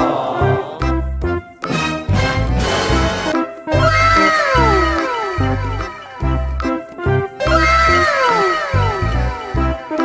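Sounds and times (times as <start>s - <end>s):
upbeat background music: 0.0s - 10.0s.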